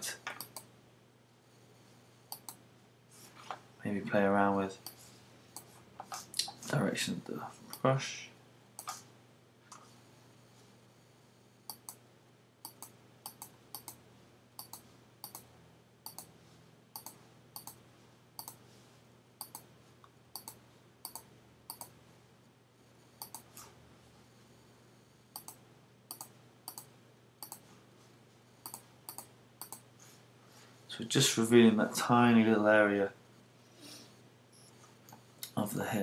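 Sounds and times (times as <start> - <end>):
computer mouse button clicking: 12.6 - 14.0.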